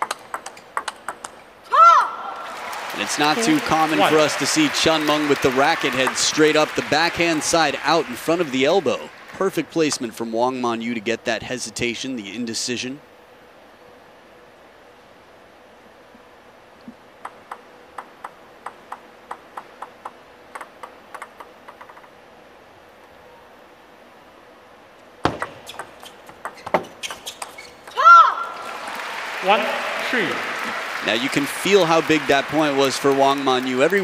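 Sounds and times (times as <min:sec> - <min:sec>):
table tennis ball bouncing: 0:00.0 - 0:01.4, 0:25.2 - 0:28.0
crowd applause and cheering: 0:02.2 - 0:10.1, 0:28.4 - 0:34.0
player shouting: 0:03.0 - 0:04.4, 0:28.0 - 0:28.6, 0:29.4 - 0:31.4
table tennis rally strikes: 0:25.2 - 0:28.7.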